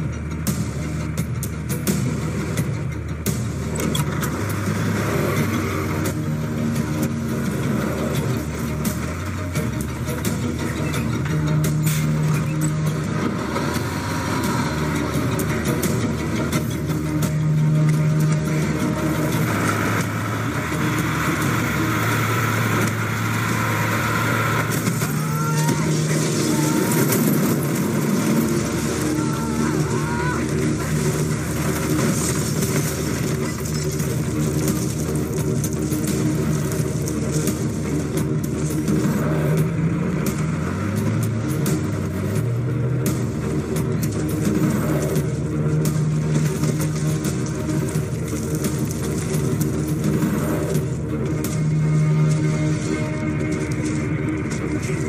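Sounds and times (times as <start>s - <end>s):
low background music: 0.0s - 55.0s
motor vehicle running: 0.0s - 55.0s.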